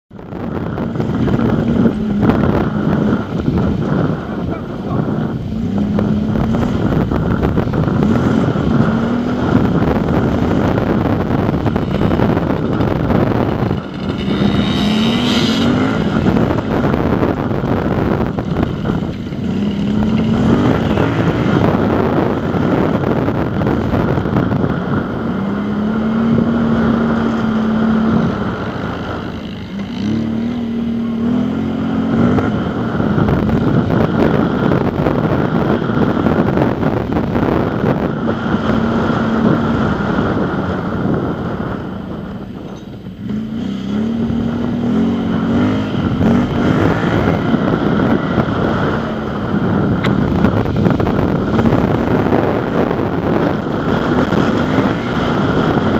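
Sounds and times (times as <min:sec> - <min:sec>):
wind rumble on microphone: 0:00.0 - 0:55.9
off-road vehicle engine revving: 0:00.3 - 0:55.9.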